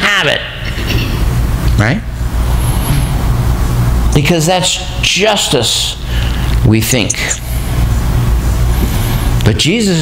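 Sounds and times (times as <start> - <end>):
steady low rumble: 0.5 - 10.0.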